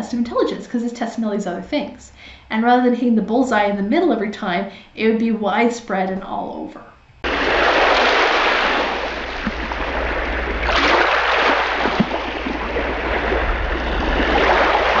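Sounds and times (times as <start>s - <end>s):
ocean waves washing ashore: 7.2s - 15.0s.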